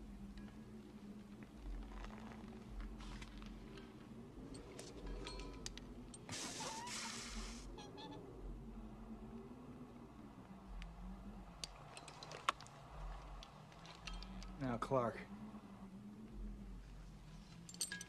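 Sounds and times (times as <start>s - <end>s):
low wavering film score drone: 0.0s - 18.0s
hot wire hissing: 6.2s - 7.7s.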